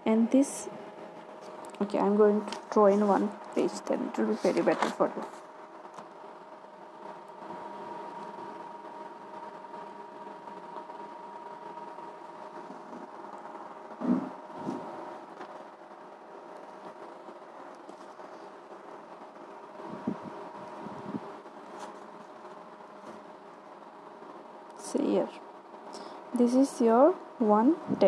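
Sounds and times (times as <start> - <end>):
faint steady tones: 0.0 - 28.0
room hum: 0.0 - 28.0.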